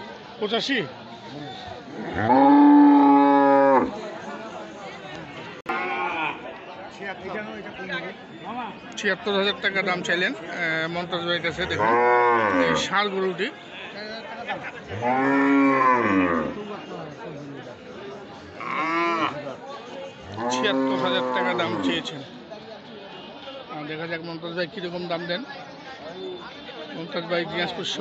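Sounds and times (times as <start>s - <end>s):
market noise: 0.0s - 28.0s
cow mooing: 1.9s - 3.9s, 11.6s - 12.9s, 14.9s - 16.6s, 18.6s - 19.4s, 20.3s - 22.0s.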